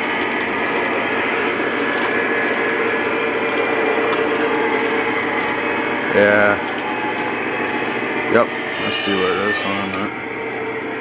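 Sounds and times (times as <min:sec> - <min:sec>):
model train running on track: 0:00.0 - 0:11.0.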